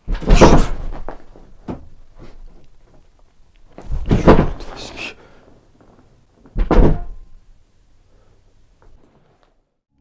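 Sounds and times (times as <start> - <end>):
loud thud: 0.1 - 1.1, 3.8 - 4.8, 6.6 - 7.3.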